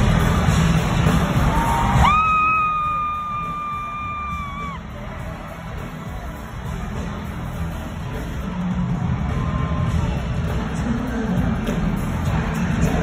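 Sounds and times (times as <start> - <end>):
concert music and crowd: 0.0 - 13.0.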